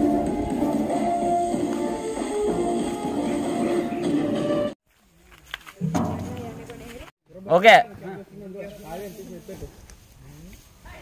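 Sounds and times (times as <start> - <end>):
background music: 0.0 - 4.8.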